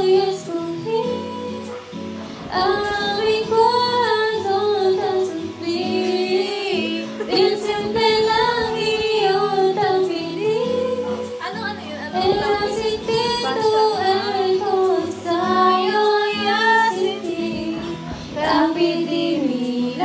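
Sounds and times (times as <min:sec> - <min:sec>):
woman singing: 0:00.0 - 0:20.0.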